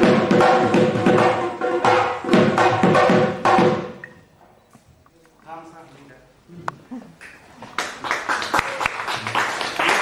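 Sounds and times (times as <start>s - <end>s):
loud drumming: 0.0s - 4.0s.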